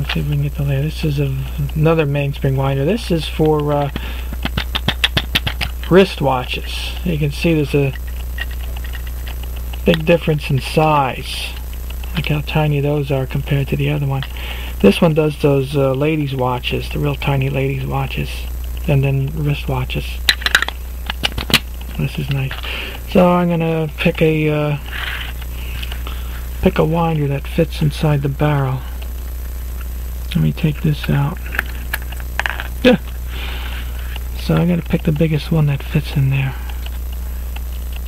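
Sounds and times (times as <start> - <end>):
plastic clicks: 20.3 - 22.6.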